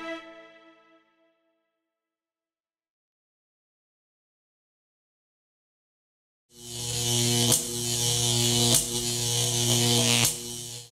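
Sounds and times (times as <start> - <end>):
steady electric buzz: 6.6 - 10.9.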